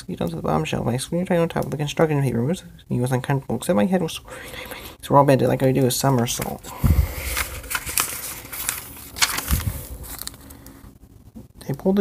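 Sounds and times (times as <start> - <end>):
book pages rustling: 5.5 - 10.9.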